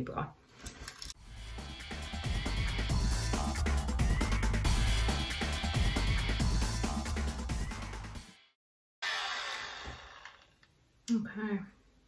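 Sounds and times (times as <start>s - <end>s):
background music: 1.2s - 8.4s
leaf blower whirring: 9.0s - 10.6s.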